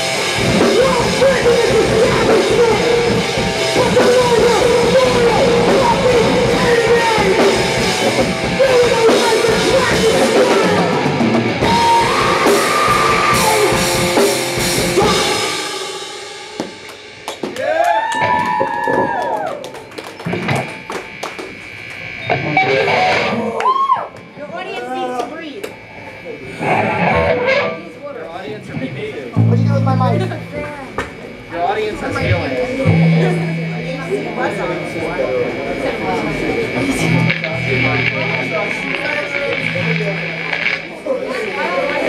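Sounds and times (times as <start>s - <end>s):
live rock band playing: 0.0s - 17.6s, 19.7s - 23.5s, 26.6s - 28.0s, 28.7s - 31.5s, 32.1s - 42.0s
drum and cymbal hits: 0.0s - 17.7s, 29.4s - 31.5s, 32.6s - 41.0s
crowd shouts and whoops: 11.6s - 13.8s, 17.5s - 19.8s, 23.1s - 24.3s.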